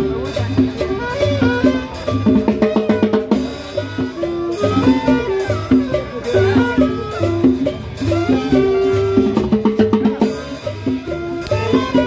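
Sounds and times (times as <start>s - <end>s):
drums and timbales beat: 0.0s - 12.0s
saxophones and trumpet melody: 0.0s - 12.0s.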